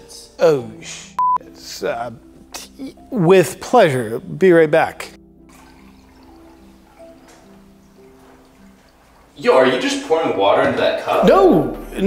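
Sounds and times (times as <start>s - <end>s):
quiet background music: 0.0s - 12.0s
water poured into a cup: 5.5s - 9.8s.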